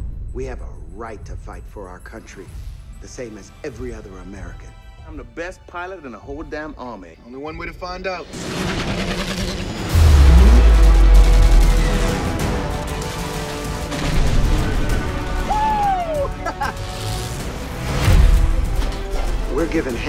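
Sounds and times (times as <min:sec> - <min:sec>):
dramatic music: 0:07.8 - 0:20.0
heavy hit: 0:08.3 - 0:15.3
machine-gun fire: 0:08.4 - 0:15.1
deep boom: 0:09.8 - 0:12.5.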